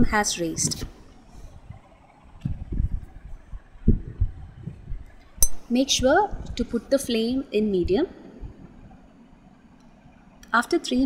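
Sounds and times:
dull low thumps: 0:00.0 - 0:09.1.

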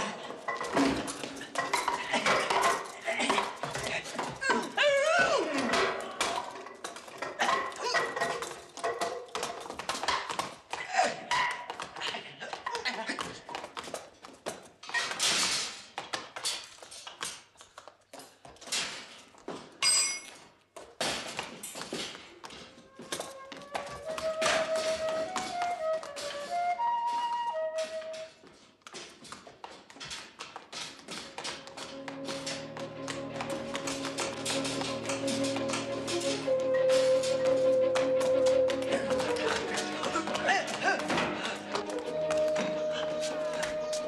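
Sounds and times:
flute melody: 0:22.8 - 0:28.6, 0:31.6 - 0:44.0
film score music: 0:31.2 - 0:44.0.

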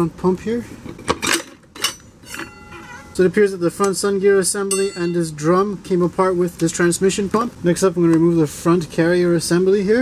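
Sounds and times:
faint metallic ringing: 0:01.8 - 0:05.7.

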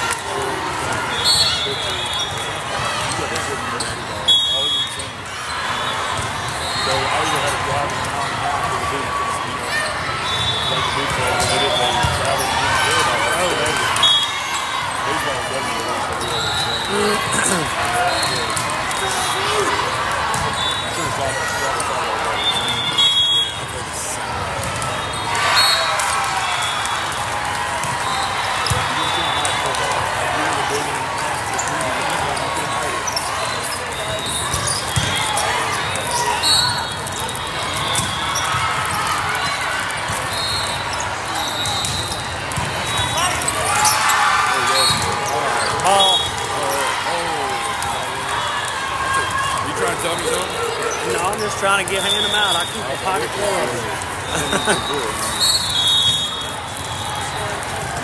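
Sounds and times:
chatter of spectators and players: 0:00.0 - 0:58.0
volleyballs struck and bouncing: 0:11.0 - 0:14.0, 0:17.2 - 0:20.6, 0:25.9 - 0:30.6, 0:34.0 - 0:44.0.

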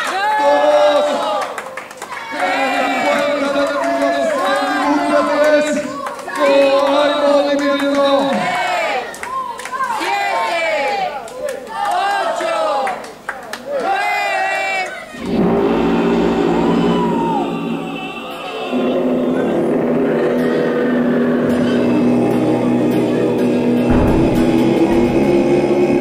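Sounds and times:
entrance music over speakers: 0:23.8 - 0:26.0.

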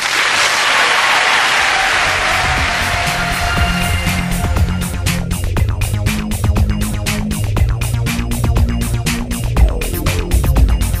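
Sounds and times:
audience applauding: 0:00.0 - 0:05.2
electronic music with bass beat: 0:02.0 - 0:11.0.

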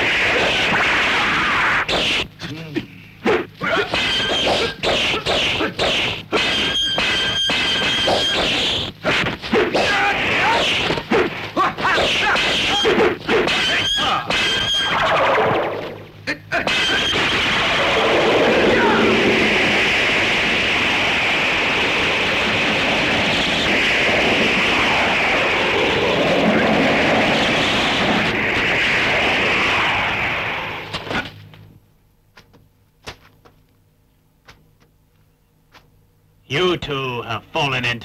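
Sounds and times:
long loud unbroken noise: 0:00.0 - 0:32.3
fight blows and weapon strikes: 0:03.8 - 0:14.7.

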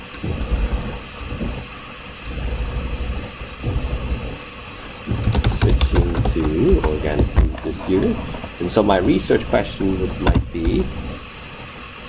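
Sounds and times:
typing on computer keyboard: 0:05.1 - 0:06.9.

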